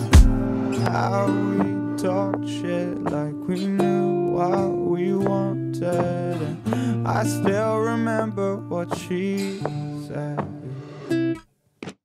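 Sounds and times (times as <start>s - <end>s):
acoustic guitar strumming chords: 0.0s - 11.4s.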